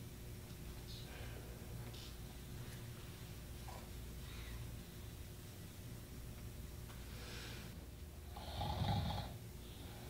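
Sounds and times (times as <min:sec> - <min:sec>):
person snoring: 0:08.3 - 0:09.4.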